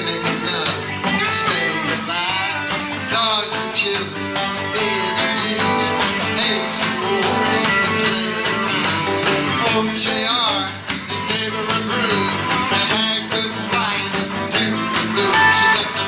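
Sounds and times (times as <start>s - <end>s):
rock band playing: 0.0s - 16.0s
pitch-bending melody line: 15.2s - 16.0s.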